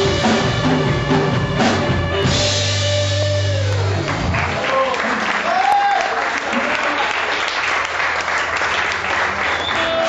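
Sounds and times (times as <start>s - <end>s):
rock band final chord: 0.0s - 4.6s
crowd applause and cheering: 3.2s - 10.0s
whistling: 9.5s - 10.0s.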